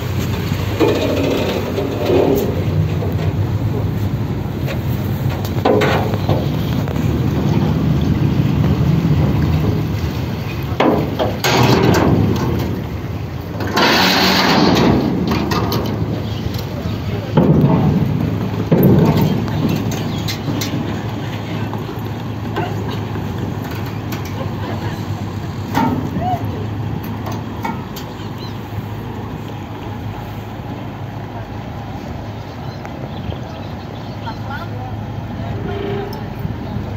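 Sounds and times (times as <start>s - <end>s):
ferry low rumble: 0.0s - 36.9s.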